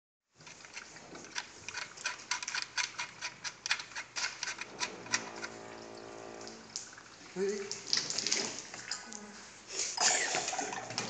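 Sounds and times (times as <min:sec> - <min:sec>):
machine steady hum: 0:04.5 - 0:07.2.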